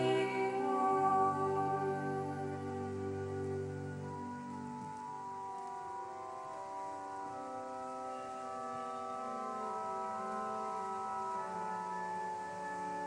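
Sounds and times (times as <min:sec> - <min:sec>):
church organ chords: 0:00.0 - 0:13.0.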